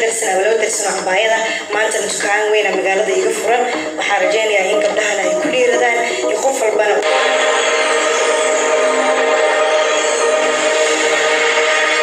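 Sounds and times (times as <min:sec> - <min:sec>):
sustained electronic chord: 0:03.2 - 0:12.0.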